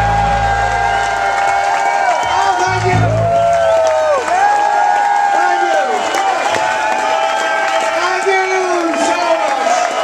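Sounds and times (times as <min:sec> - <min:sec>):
crowd cheering and applauding: 0:00.0 - 0:10.0.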